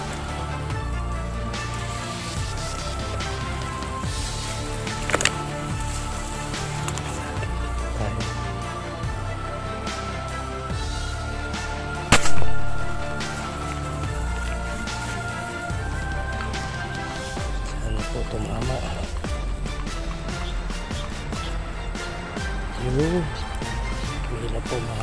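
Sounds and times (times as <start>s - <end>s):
background music: 0.0s - 25.0s
air gun shot: 12.1s - 13.4s.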